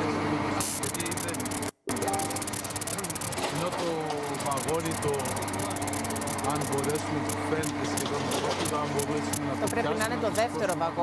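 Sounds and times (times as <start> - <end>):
heavy machinery engine clattering: 0.8 - 11.0.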